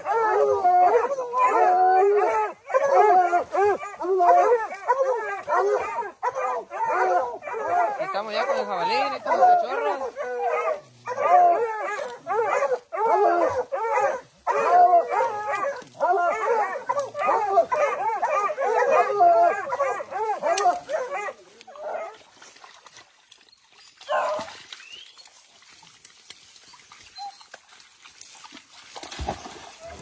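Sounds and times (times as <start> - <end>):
hounds baying and yelping: 0.0 - 22.3, 24.0 - 25.0, 27.1 - 27.6.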